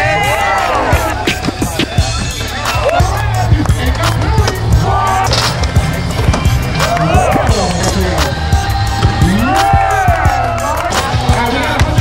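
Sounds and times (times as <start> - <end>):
music with steady bass line: 0.0 - 12.0
voices calling out: 0.0 - 12.0
skateboards rolling and clacking: 1.3 - 8.3.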